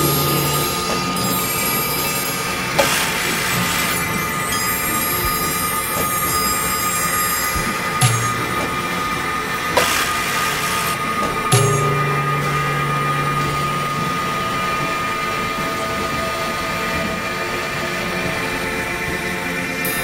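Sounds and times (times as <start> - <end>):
low held tone: 0.0 - 18.4
experimental electronic drone: 0.0 - 20.0.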